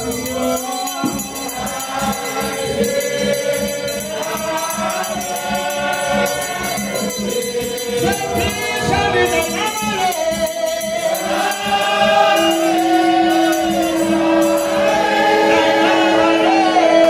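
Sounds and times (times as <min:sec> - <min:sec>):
congregation singing a hymn: 0:00.0 - 0:17.0
steady rhythmic beat: 0:00.0 - 0:17.0.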